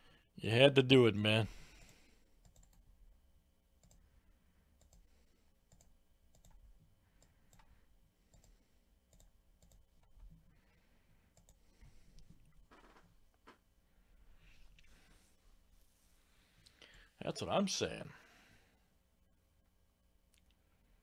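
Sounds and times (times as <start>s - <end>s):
computer mouse clicks: 1.8s - 2.8s, 3.8s - 4.0s, 4.8s - 5.1s, 5.7s - 6.6s, 7.2s - 7.7s, 8.3s - 10.3s, 11.3s - 11.6s.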